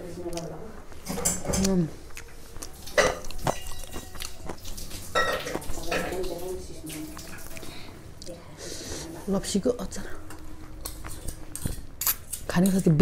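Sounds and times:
chewing noises: 0.2 - 9.0, 10.2 - 12.9.

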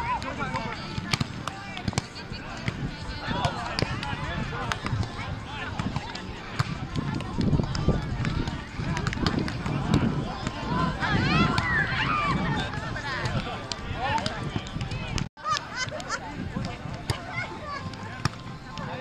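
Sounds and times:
indistinct voices outdoors: 0.0 - 19.0.

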